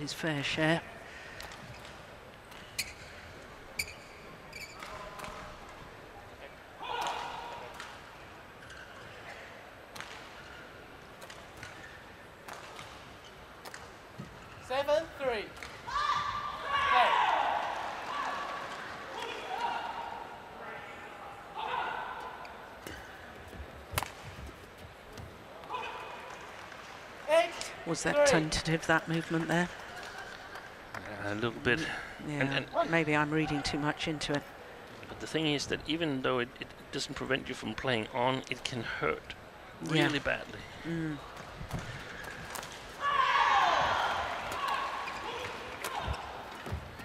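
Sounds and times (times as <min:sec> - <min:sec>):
shoes squeaking on court: 0:01.7 - 0:05.5
voices in hall: 0:14.6 - 0:23.5
racket hitting shuttlecock: 0:23.9 - 0:24.4.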